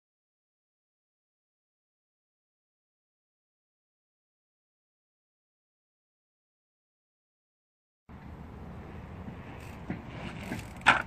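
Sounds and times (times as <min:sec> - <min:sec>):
bike wheel thud on ledge: 0:09.9 - 0:11.0.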